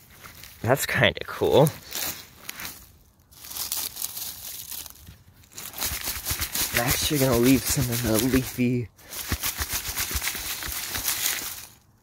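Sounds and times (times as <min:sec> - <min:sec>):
dry leaves rustling and crackling: 0:00.0 - 0:00.6, 0:01.6 - 0:12.0.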